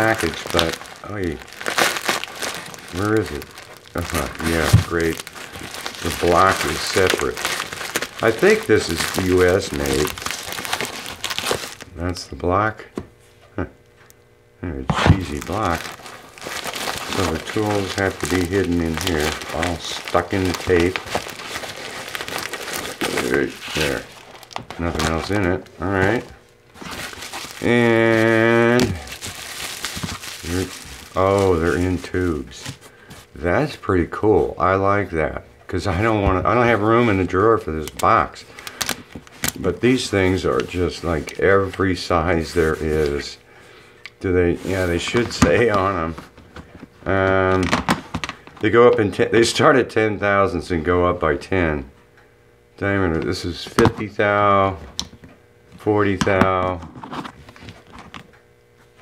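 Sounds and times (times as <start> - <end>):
paper mailer crinkling: 0.0 - 12.2, 14.8 - 33.7, 35.8 - 43.4, 44.5 - 49.6.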